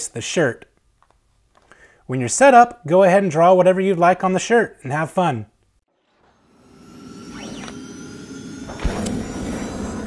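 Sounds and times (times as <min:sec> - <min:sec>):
whoosh: 0:05.9 - 0:10.0.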